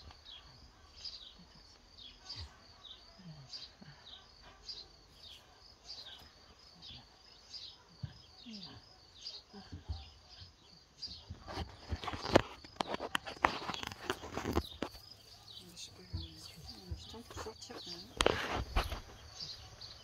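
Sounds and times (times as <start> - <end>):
small birds chirping: 0.0 - 20.0
rustling and knocks: 11.1 - 19.7.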